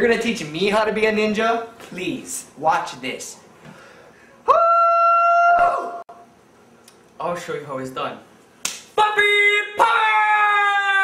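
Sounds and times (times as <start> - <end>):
man's high falsetto cry: 4.5 - 6.0.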